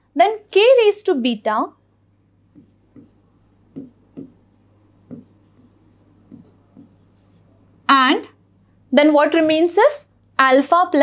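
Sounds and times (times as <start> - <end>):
low steady hum: 0.0 - 10.7
stylus tapping on touchscreen: 2.5 - 7.5.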